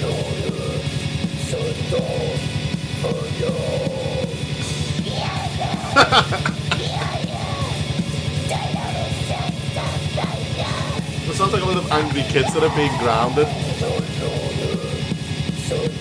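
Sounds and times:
lo-fi metal song: 0:00.0 - 0:16.0
man laughing: 0:05.7 - 0:07.3, 0:11.3 - 0:14.2.

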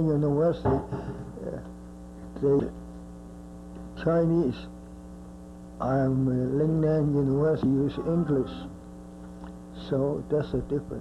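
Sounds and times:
electrical mains hum: 0:00.0 - 0:11.0
man's voice syllable: 0:05.8 - 0:08.7.

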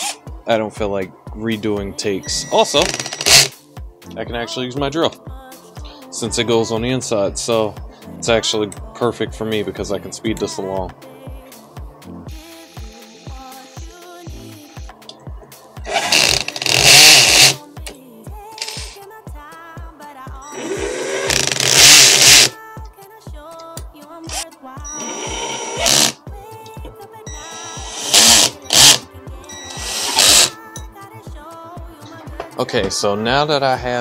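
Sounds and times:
background music with beat: 0:00.0 - 0:34.0
cordless drill driving screws: 0:02.8 - 0:03.6, 0:15.9 - 0:17.6, 0:18.6 - 0:19.0, 0:20.5 - 0:22.6, 0:24.3 - 0:26.2, 0:27.3 - 0:30.6.

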